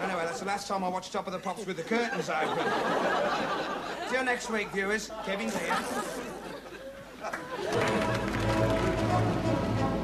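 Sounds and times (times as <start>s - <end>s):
music: 7.6s - 10.0s.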